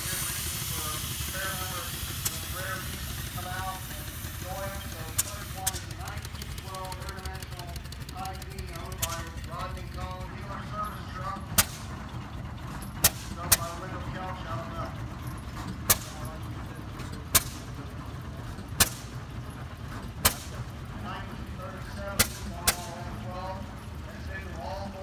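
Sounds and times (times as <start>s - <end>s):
low engine rumble: 0.0s - 25.0s
sharp loud bangs: 11.5s - 12.0s, 13.0s - 13.8s, 15.8s - 16.4s, 17.3s - 17.8s, 18.7s - 19.2s, 20.2s - 20.7s, 22.1s - 23.1s.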